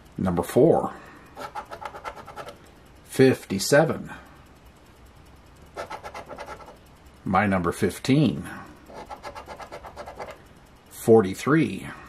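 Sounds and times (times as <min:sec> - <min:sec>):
scratcher scraping lottery ticket: 0:01.4 - 0:02.6, 0:05.8 - 0:06.8, 0:08.9 - 0:10.4.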